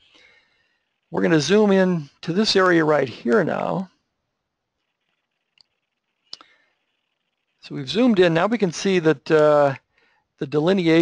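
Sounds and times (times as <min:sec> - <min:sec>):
computer mouse clicks: 0:04.8 - 0:07.3.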